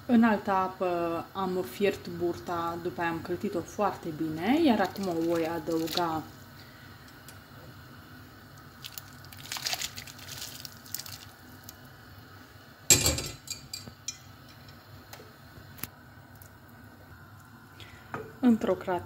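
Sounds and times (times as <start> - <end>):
wet squishing and splashing: 4.8 - 6.1, 8.8 - 11.8.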